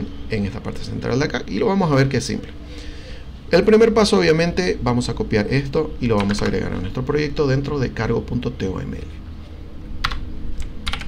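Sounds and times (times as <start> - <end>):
computer keyboard keystrokes: 6.2 - 6.6, 10.0 - 11.0.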